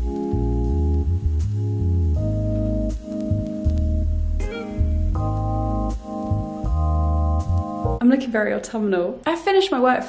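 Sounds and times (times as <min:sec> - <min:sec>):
bass line: 0:00.0 - 0:08.0
sustained keyboard chords: 0:00.0 - 0:08.0.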